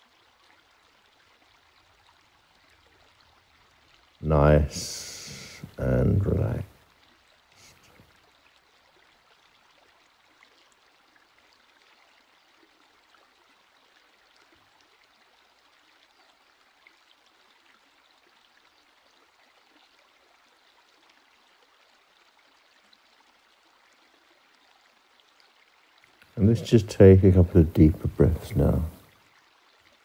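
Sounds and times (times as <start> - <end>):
faint steady background hiss: 4.0 - 8.1, 26.1 - 29.2.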